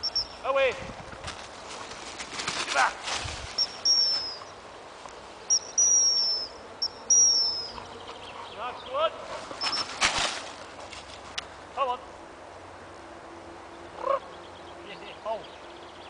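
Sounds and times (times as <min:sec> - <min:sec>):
dog whistle blasts: 0:03.6 - 0:04.4, 0:05.5 - 0:07.7.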